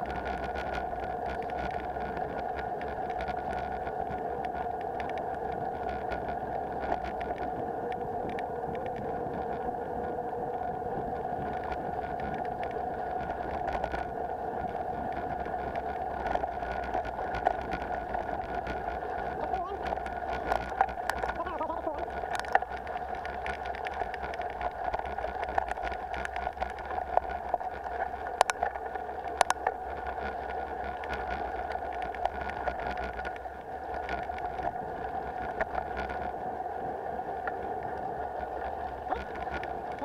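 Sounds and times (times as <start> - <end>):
bike rattling over stones: 11.3 - 36.4, 38.4 - 40.0.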